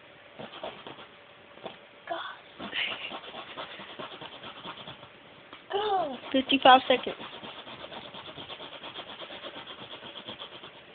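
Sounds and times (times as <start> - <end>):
zipper zipping rapidly: 0.4 - 1.1, 2.6 - 5.1, 6.0 - 10.8.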